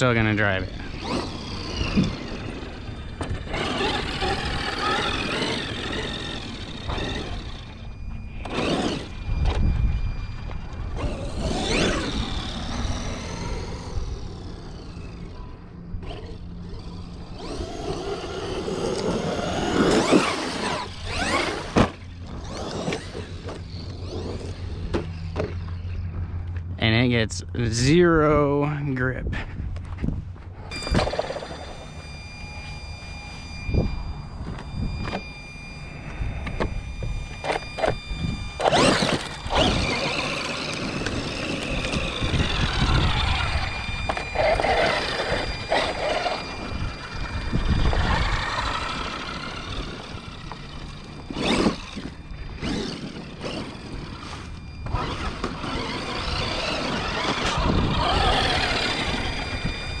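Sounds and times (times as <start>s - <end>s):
toy truck motor whining: 0.0s - 26.0s, 30.6s - 60.0s
tyres on the ground: 0.0s - 26.8s, 29.2s - 60.0s.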